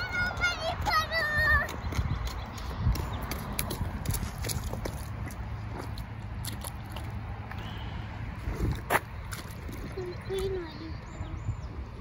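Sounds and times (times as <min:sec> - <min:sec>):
footsteps crunching on gravel: 0:01.7 - 0:07.5.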